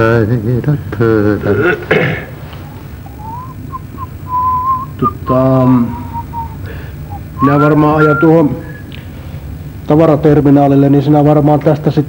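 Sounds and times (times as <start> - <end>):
person whistling a tune: 3.1 - 8.9.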